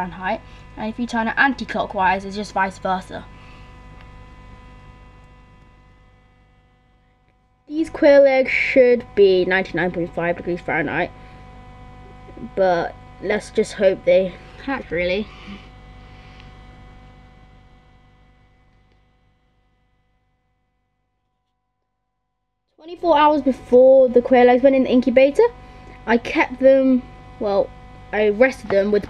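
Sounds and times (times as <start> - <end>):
fan humming faintly: 0.0 - 19.9, 22.8 - 29.0.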